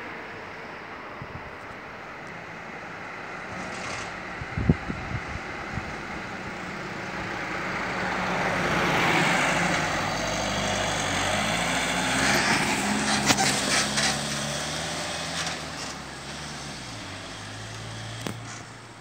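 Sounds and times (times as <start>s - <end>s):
van driving past: 2.5s - 19.0s.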